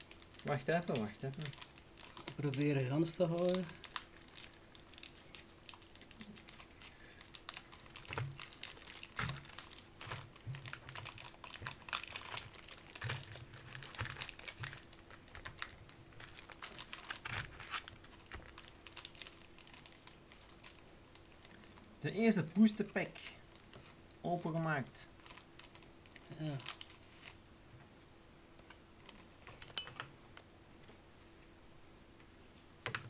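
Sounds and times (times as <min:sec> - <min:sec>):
foil wrappers crinkling: 0:00.0 - 0:24.1, 0:25.1 - 0:27.4, 0:29.0 - 0:30.0
faint steady hum: 0:00.0 - 0:33.0.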